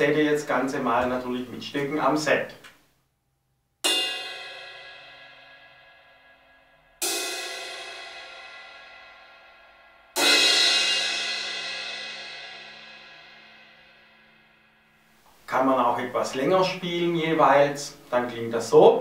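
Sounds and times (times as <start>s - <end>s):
crash cymbal struck: 3.8s - 15.1s.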